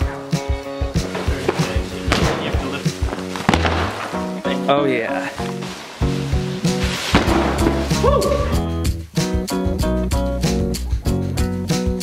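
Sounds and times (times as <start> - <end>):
background music: 0.0 - 12.0
drywall crashing: 1.2 - 4.4, 5.6 - 8.1
breaking gypsum board crumbling: 6.8 - 8.0.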